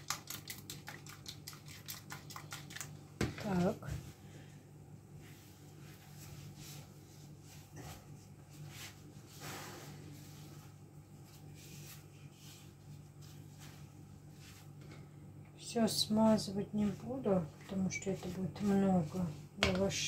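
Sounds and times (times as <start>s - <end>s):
steady low hum: 0.0s - 20.0s
flatbread rustling being folded: 5.1s - 15.1s, 16.8s - 20.0s.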